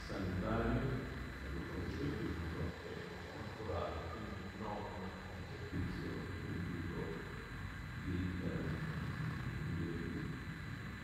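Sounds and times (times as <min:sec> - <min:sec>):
muffled speech: 0:00.0 - 0:10.6.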